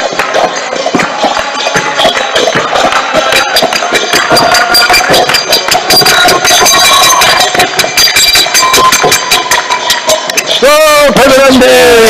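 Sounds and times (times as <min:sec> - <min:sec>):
drum beating: 0:00.0 - 0:12.0
hand cymbals striking: 0:00.0 - 0:12.0
harmonium notes: 0:00.0 - 0:12.0.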